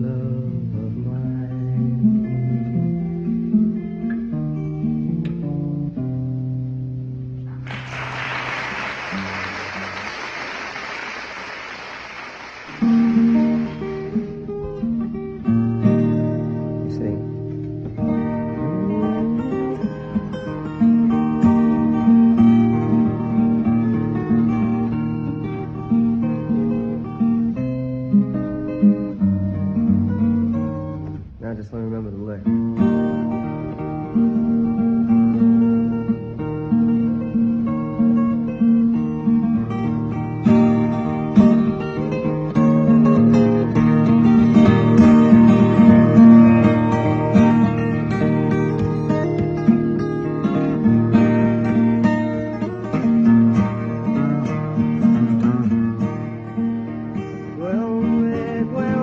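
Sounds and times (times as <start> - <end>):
fingerpicked acoustic guitar: 0.0 - 59.0
applause: 7.6 - 14.2.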